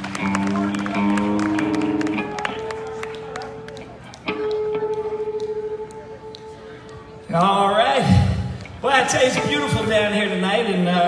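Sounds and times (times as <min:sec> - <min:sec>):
audience clapping: 0:00.0 - 0:07.6
live band holding chords: 0:00.0 - 0:11.0.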